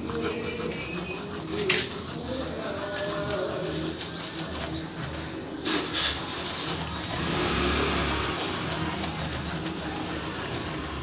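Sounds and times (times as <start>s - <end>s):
motor vehicle passing: 1.6s - 11.0s.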